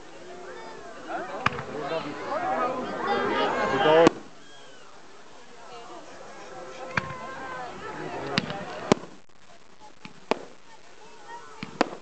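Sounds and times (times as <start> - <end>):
fireworks bangs: 0.0 - 4.8, 6.6 - 12.0.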